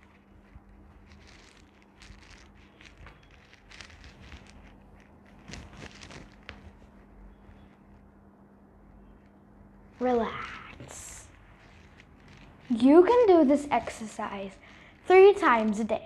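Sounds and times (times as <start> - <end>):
clothing rustling: 0.0 - 8.2, 9.0 - 16.0
faint low hum: 0.0 - 16.0.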